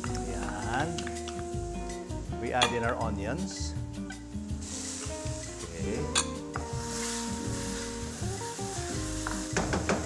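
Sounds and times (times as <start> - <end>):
onions sizzling in a wok: 3.5 - 10.0
wooden spoon knocking a pan: 9.2 - 10.0.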